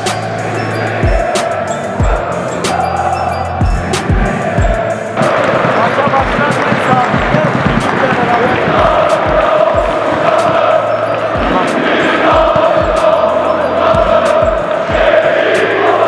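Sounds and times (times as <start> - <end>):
crowd chanting in unison: 0.0 - 16.0
low thumping beat: 1.0 - 3.0, 3.6 - 16.0.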